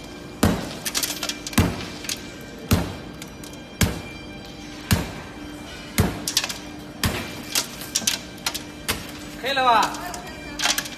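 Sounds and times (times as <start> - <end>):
sledgehammer striking glass: 0.4 - 3.0.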